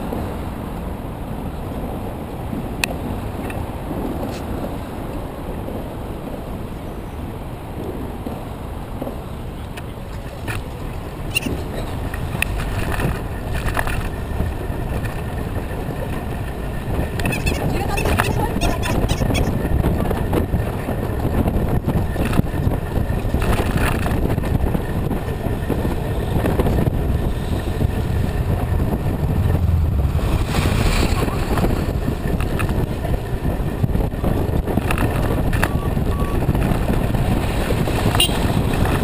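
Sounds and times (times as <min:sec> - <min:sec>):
bicycle tyre and road noise: 0:00.0 - 0:39.0
wind rumbling on microphone: 0:00.0 - 0:39.0.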